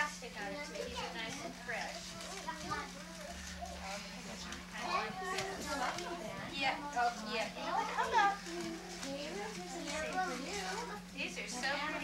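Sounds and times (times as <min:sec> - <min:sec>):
children and adults chattering: 0:00.0 - 0:12.0
steady low hum: 0:00.0 - 0:12.0.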